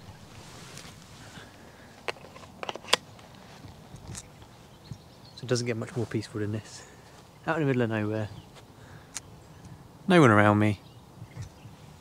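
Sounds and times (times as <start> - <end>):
steady outdoor hiss: 0.0 - 12.0
camera handling clicks and knocks: 2.0 - 3.4.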